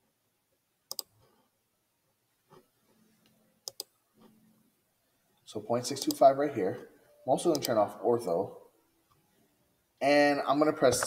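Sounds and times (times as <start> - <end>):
computer mouse clicks: 0.9 - 1.4, 3.6 - 4.3, 5.9 - 6.2, 7.5 - 7.8.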